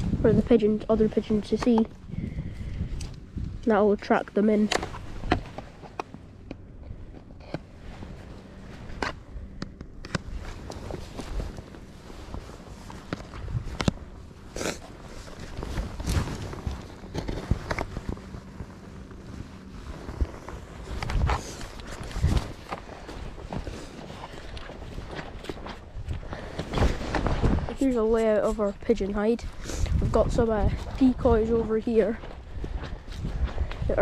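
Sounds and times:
clothing rustling: 10.2 - 28.9
footsteps on soft soil: 10.2 - 34.0.

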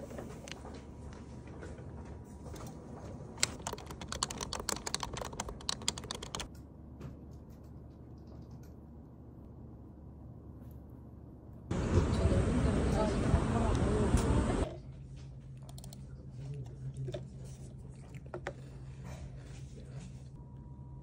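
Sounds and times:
low background hum: 0.0 - 21.0
computer keyboard typing: 3.4 - 6.5.

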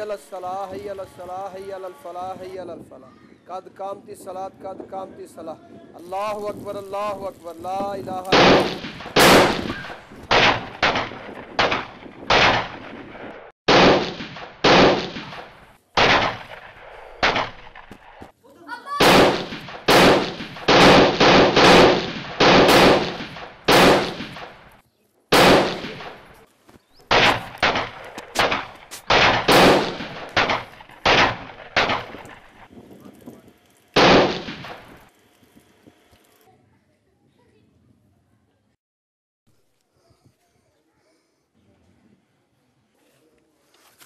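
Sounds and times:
gunshots with echo: 8.3 - 18.3, 19.0 - 26.4, 27.1 - 32.7, 34.0 - 35.1.

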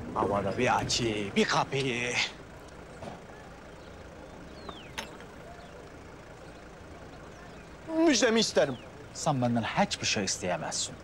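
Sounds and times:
vehicle rumble: 0.0 - 11.0.

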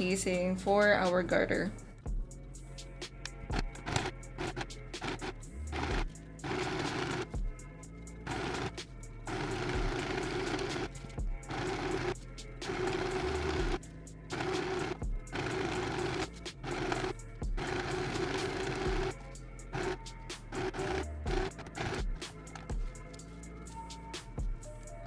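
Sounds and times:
background music: 0.0 - 25.0
sewing machine stitching: 3.8 - 7.3, 8.3 - 19.2, 19.8 - 22.7.

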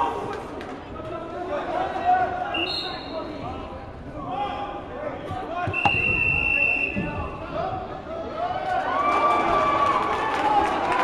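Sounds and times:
crowd voices: 0.0 - 11.0
long referee's whistle blast: 2.6 - 3.2, 5.7 - 7.0.

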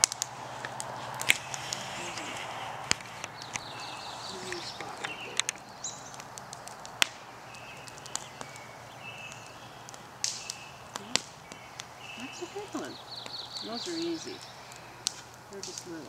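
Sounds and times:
birds calling faintly: 0.0 - 16.0
wood fire crackling and popping: 0.0 - 16.0.

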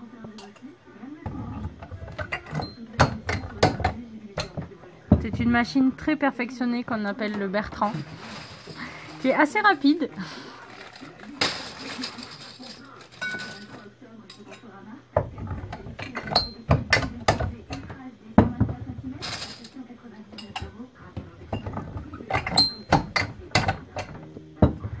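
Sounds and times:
glass bottles clinking: 0.0 - 5.8, 7.2 - 25.0
rustling scrape: 7.6 - 9.6.

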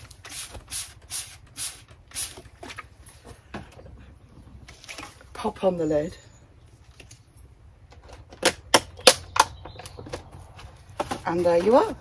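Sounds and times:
spray bottle squirting water: 0.0 - 2.6.

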